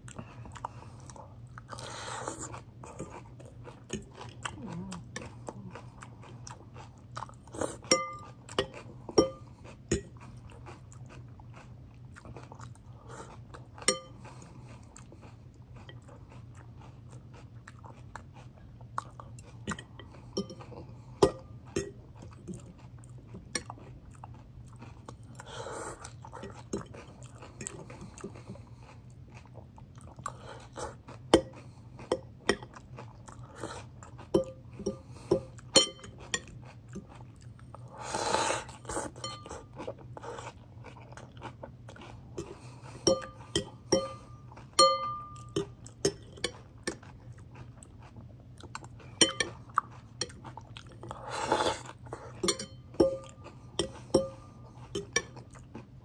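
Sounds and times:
person chewing salad: 0.0 - 56.0.

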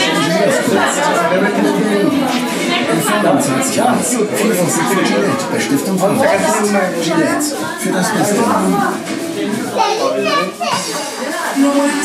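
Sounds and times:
children's voices: 0.0 - 12.0
people talking: 0.0 - 12.0.

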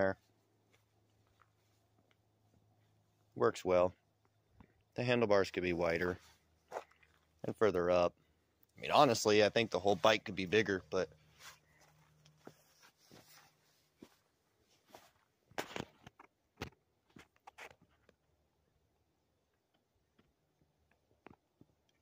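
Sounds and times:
footsteps on dirt: 6.2 - 7.0, 8.9 - 16.1.

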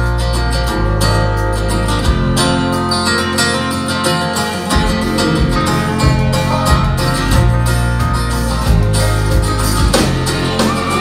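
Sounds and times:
acoustic guitar: 0.0 - 11.0
country band playing instrumental: 0.0 - 11.0
pedal steel guitar: 0.0 - 11.0.

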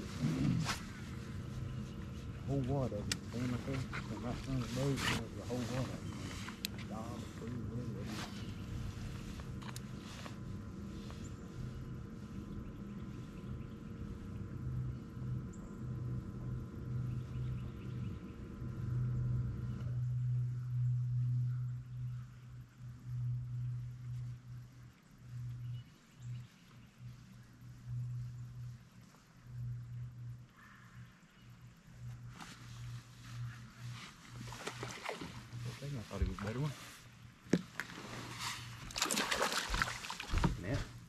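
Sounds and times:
fluctuating low rumble: 0.0 - 41.0
trolling motor humming: 0.0 - 41.0.

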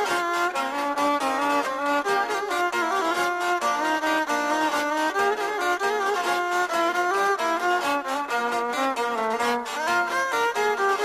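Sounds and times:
instrumental folk dance music: 0.0 - 11.0.

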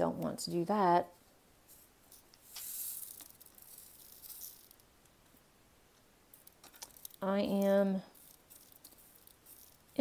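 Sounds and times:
high rustle with light ticks: 1.7 - 4.9, 6.3 - 10.0.

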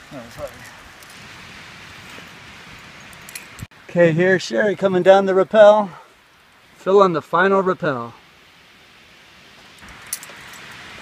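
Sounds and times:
steady outdoor hiss: 0.0 - 11.0
metallic clinks of climbing hardware: 3.1 - 3.7, 9.8 - 10.8.

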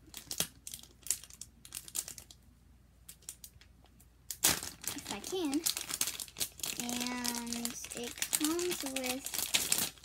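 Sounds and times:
packaging crinkling and tearing: 0.0 - 2.4, 4.3 - 10.0.

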